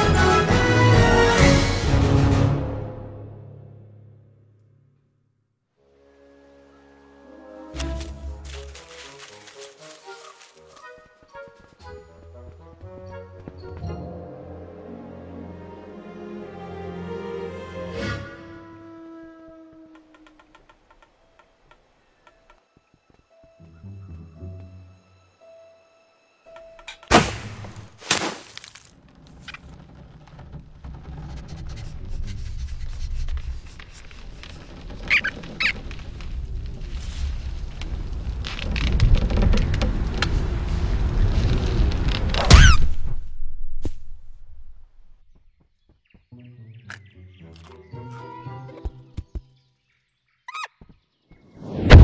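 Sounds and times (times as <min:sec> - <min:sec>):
cartoon animal squeak: 0:42.5 - 0:42.8, 0:50.5 - 0:50.8.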